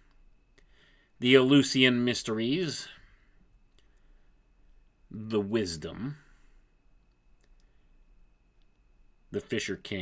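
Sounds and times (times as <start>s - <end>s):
faint high-pitched tone: 0.0s - 10.0s.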